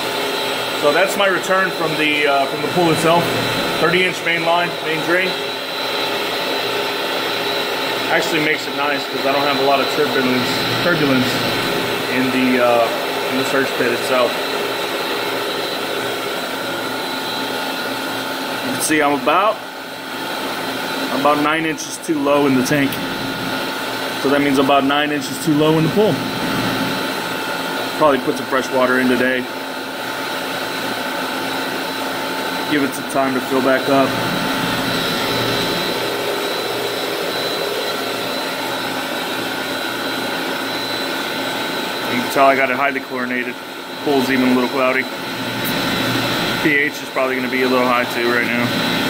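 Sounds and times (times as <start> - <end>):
electric pump motors whining: 0.0 - 49.0.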